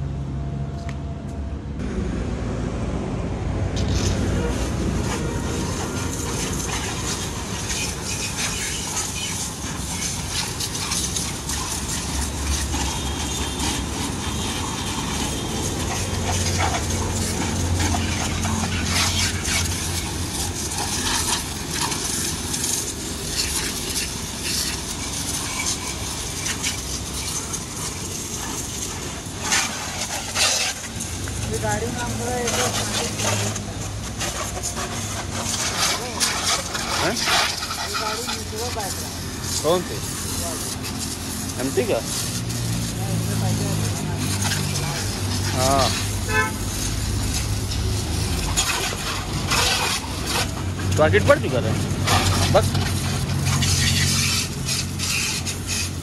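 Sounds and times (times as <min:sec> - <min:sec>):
low hum: 0:00.0 - 0:04.4
pressure washer spray hissing: 0:03.7 - 0:56.0
water spattering on surfaces: 0:03.7 - 0:56.0.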